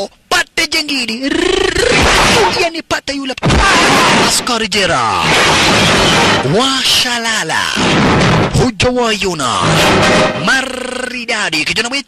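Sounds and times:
man's voice: 0.0s - 5.3s, 8.5s - 12.0s
glass shattering: 1.9s - 2.6s, 5.2s - 6.5s.

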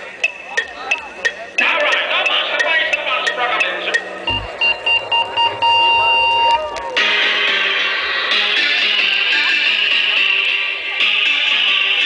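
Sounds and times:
high electronic beep pulsing: 0.2s - 6.8s.

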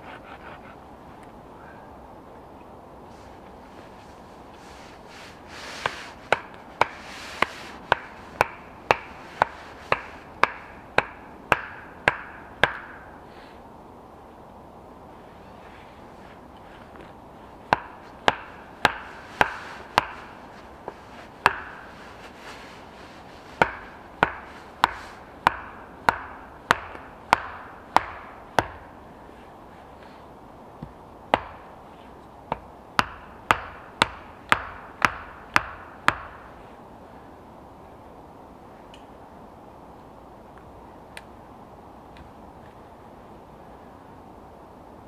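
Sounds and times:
hammering wooden stake: 5.8s - 13.1s, 17.7s - 21.9s, 23.6s - 28.9s, 30.8s - 31.7s, 32.5s - 36.5s.

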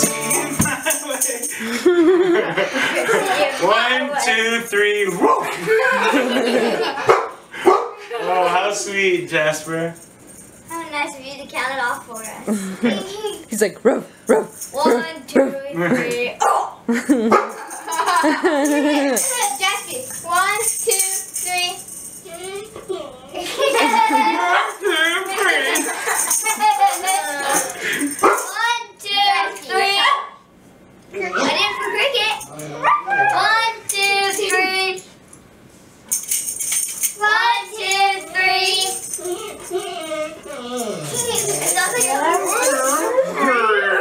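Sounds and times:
high jingle or rattle: 0.0s - 3.6s, 4.2s - 5.2s, 9.4s - 12.6s, 14.3s - 15.2s, 17.2s - 28.7s, 31.5s - 35.2s, 36.1s - 43.2s
people laughing: 0.0s - 4.0s, 5.4s - 7.2s, 16.9s - 19.2s, 23.3s - 28.2s, 39.2s - 44.0s
unclear voices: 0.0s - 10.0s, 10.7s - 16.8s, 18.2s - 30.3s, 31.1s - 35.1s, 36.7s - 44.0s
dog barking: 5.2s - 5.5s, 7.0s - 8.0s, 14.3s - 15.0s, 16.4s - 17.6s, 28.2s - 28.5s, 30.0s - 30.4s, 32.8s - 33.4s.

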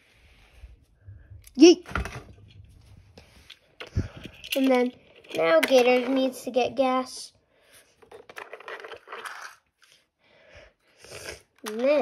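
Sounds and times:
toy car on plastic track: 3.8s - 7.2s, 7.8s - 10.0s, 11.3s - 12.0s.

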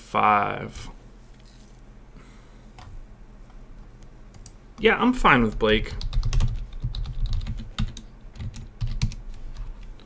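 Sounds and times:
computer keyboard typing: 4.3s - 10.0s.

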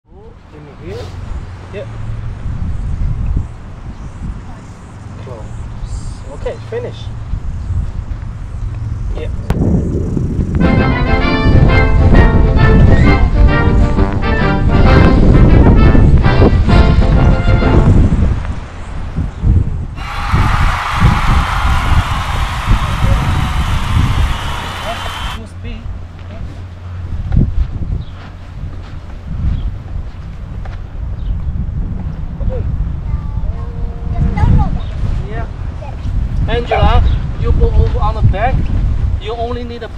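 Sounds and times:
wind buffeting microphone: 0.7s - 39.9s
young child's voice: 33.0s - 36.2s.

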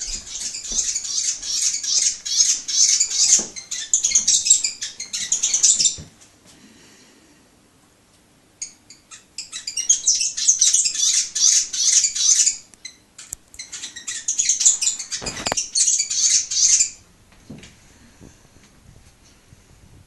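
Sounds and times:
bird chattering in squeaky chirps: 0.0s - 6.0s, 8.6s - 17.0s.

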